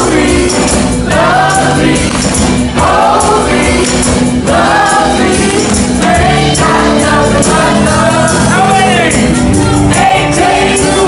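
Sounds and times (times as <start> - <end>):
live rock band: 0.0 - 11.0
shaken tambourine: 0.0 - 11.0.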